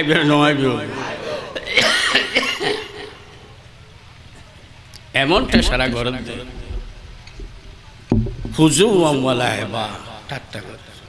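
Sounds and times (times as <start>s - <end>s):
man coughing: 1.6s - 2.8s.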